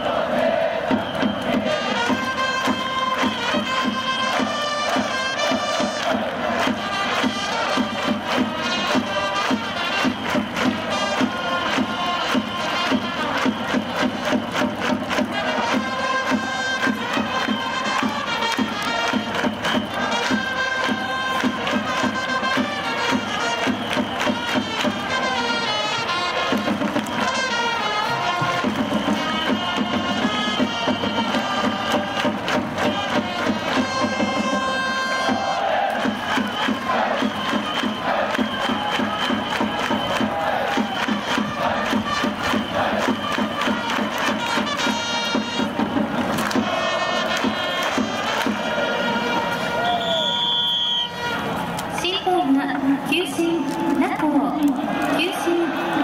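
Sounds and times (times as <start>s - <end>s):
crowd singing and chanting: 0.0s - 24.2s, 24.8s - 50.2s, 51.4s - 56.0s
steady drum beat: 0.0s - 25.6s, 26.2s - 49.2s
trumpets playing melody: 1.6s - 10.1s, 10.8s - 13.5s, 15.4s - 23.7s, 24.4s - 26.6s, 27.2s - 28.6s, 29.2s - 32.2s, 32.8s - 35.9s, 41.2s - 45.8s, 46.6s - 51.7s.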